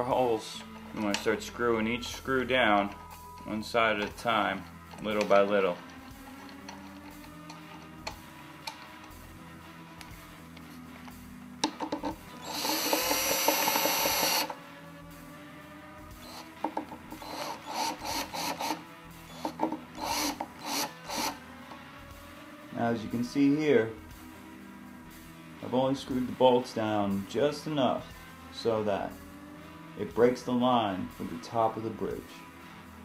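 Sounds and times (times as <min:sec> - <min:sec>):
background music: 0:00.0 - 0:33.0
screwdriver turning screws: 0:04.9 - 0:09.2, 0:11.6 - 0:14.6, 0:16.2 - 0:21.4.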